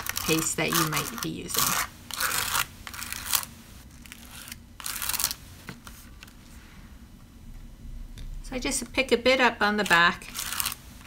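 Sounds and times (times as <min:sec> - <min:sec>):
palette knife scraping stencil: 0:00.0 - 0:03.5, 0:09.8 - 0:10.8.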